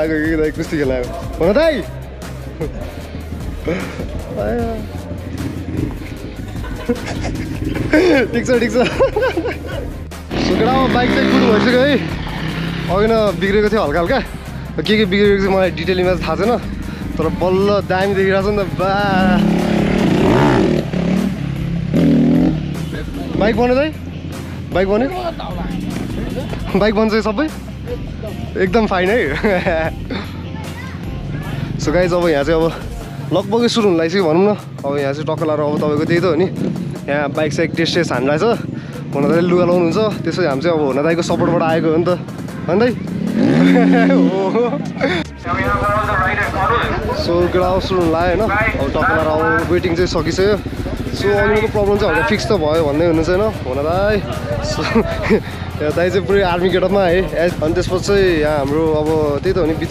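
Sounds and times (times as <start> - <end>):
voices: 0.0 - 59.9
dirt bike engine revving: 5.2 - 8.7, 10.2 - 13.6, 18.1 - 24.7, 43.0 - 59.9
talking voices: 43.4 - 59.9.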